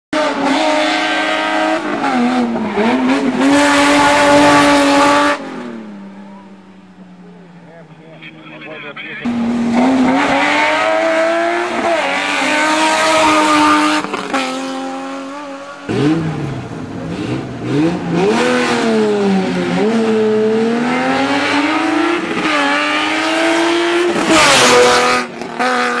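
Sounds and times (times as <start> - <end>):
rally car engine revving: 0.1 - 26.0.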